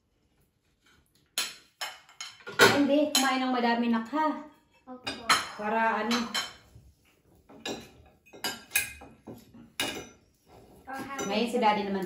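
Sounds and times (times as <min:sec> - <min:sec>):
forks clinking on plates: 0:07.5 - 0:10.2.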